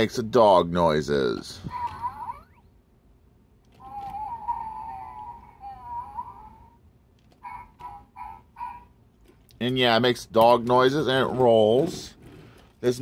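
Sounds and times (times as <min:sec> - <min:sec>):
toy robot dog whine: 0:01.6 - 0:02.6, 0:03.7 - 0:09.0.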